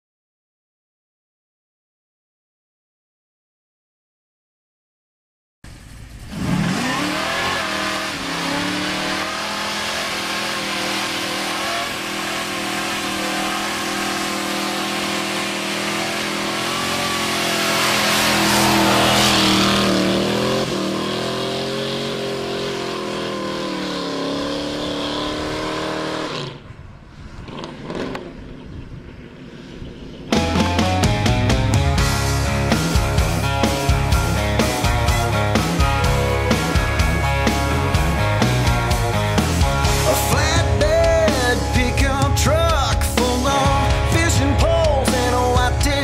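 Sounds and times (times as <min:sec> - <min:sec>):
truck engine revving: 0:05.7 - 0:26.7, 0:30.3 - 0:46.0.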